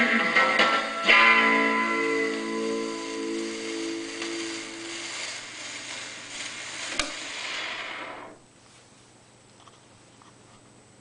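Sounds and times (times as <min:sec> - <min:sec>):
rockabilly record chord: 0:00.0 - 0:08.5
record surface hiss and crackle: 0:00.0 - 0:11.0.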